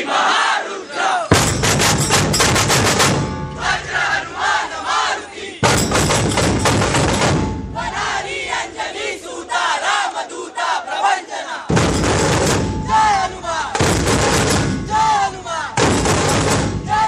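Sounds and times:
crowd of men shouting: 0.0 - 1.4, 3.6 - 5.9, 7.7 - 11.7, 12.8 - 17.0.

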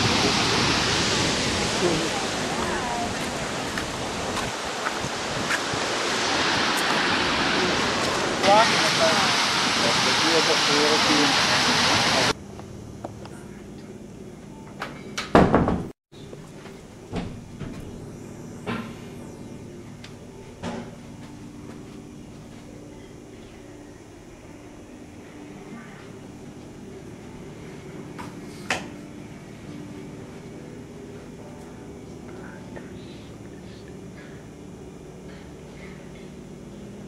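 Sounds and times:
loud rushing noise: 0.0 - 12.4.

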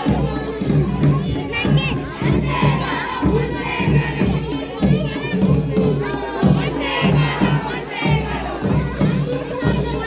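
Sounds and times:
crowd shouting slogans: 0.0 - 10.0.

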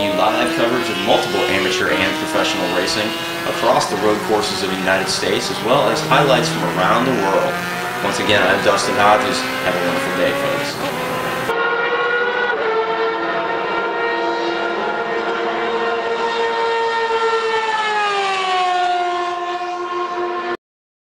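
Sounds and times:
race car engine at high revs: 0.0 - 20.6.

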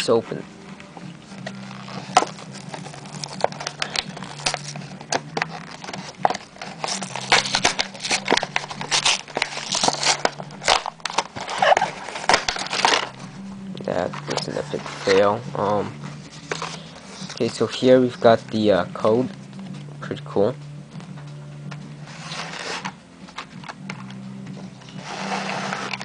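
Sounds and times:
plastic packaging crinkling: 1.4 - 13.3, 24.8 - 26.0
steady low hum: 12.0 - 26.0.

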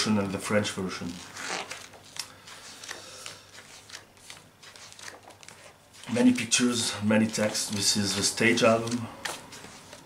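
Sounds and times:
book pages turning: 0.3 - 10.0.

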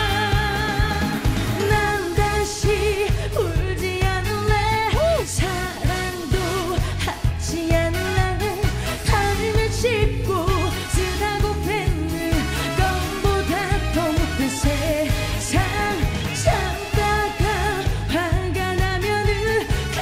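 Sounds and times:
instrumental accompaniment with beat: 0.0 - 20.0
woman singing with vibrato: 0.0 - 20.0.

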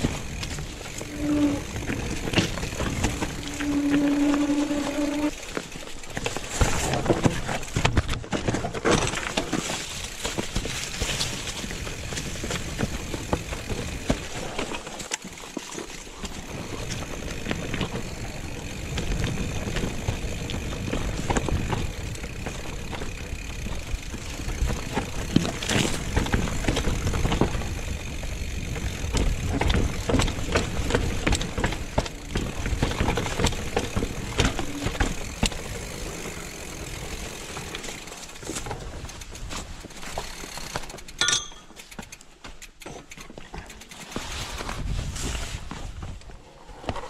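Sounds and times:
tyres crunching over gravel: 0.0 - 41.2
bike chain and frame rattling: 0.0 - 44.9.

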